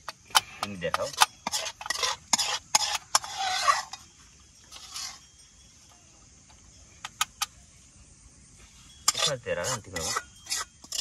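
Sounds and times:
metal spoon clinking on pan: 9.0 - 11.0.

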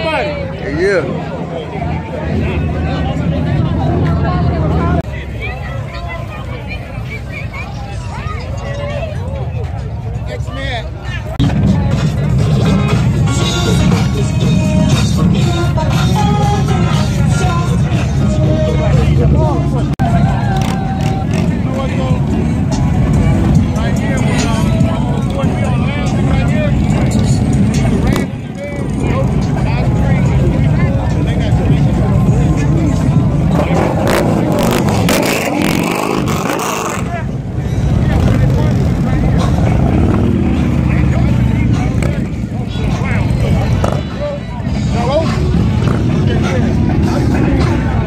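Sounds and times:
crowd voices: 0.0 - 48.0
motorcycle engines idling: 0.0 - 48.0.

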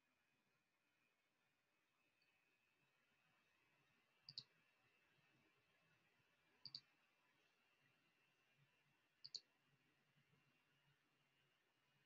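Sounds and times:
faint clicks: 4.2 - 4.5, 6.6 - 6.9, 9.2 - 9.5.

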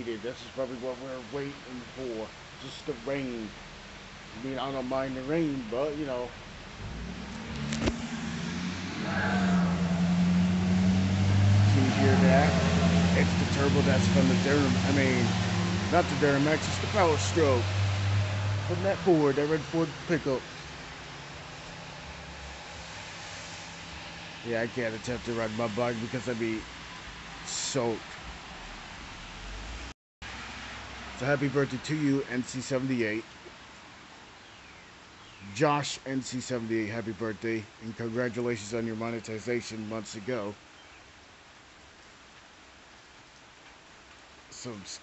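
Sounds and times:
rain hiss: 0.0 - 45.0
diesel engine running: 9.7 - 17.8.

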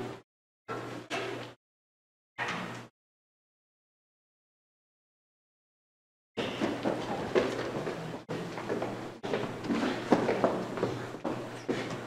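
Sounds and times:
shuffling: 6.4 - 12.0.

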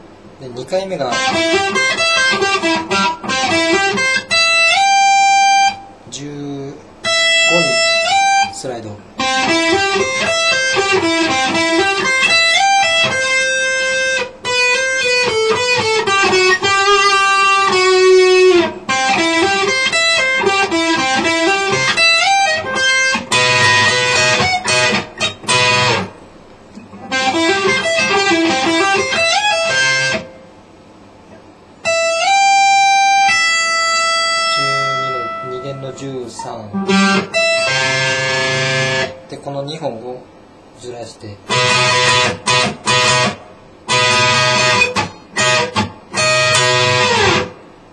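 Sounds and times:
electric guitar picked runs: 1.1 - 6.0, 9.2 - 30.4, 31.8 - 39.2, 41.5 - 47.9.

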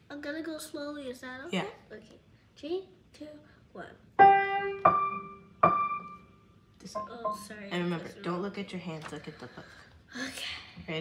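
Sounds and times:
piano single notes: 4.2 - 6.3.

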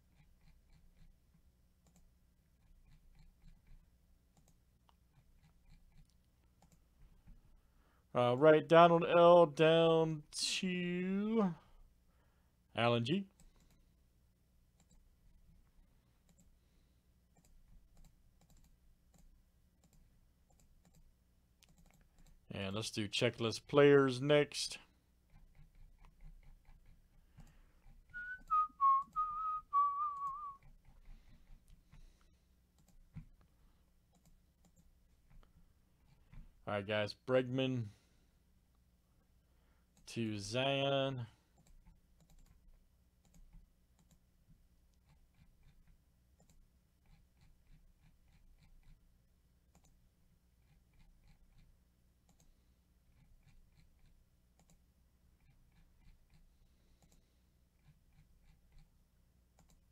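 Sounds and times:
computer mouse clicks: 1.8 - 6.8, 13.4 - 13.8, 14.8 - 15.0, 16.2 - 16.5, 17.3 - 22.4, 32.8 - 33.5, 34.1 - 35.5, 41.6 - 42.6, 43.2 - 44.2, 44.9 - 49.0, 49.7 - 50.0, 50.6 - 54.8, 55.4 - 58.9, 59.5 - 59.9
person whistling a tune: 28.1 - 30.6.

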